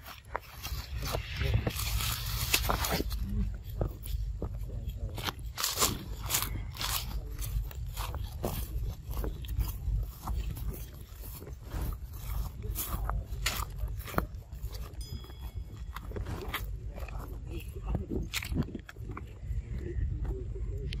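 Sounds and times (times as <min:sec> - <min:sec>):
dry leaves crunching: 0:00.0 - 0:19.0
steady low rumble: 0:00.0 - 0:21.0.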